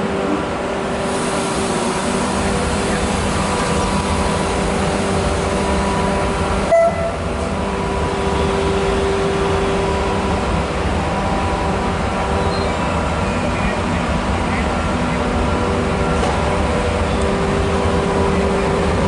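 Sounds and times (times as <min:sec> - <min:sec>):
locomotive humming with held tones: 0:00.0 - 0:19.0.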